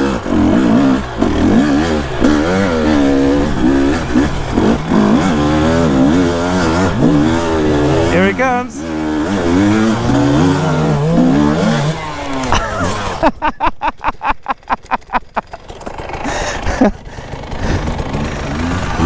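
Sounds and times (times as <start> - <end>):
dirt bike engine revving: 0.0 - 19.0.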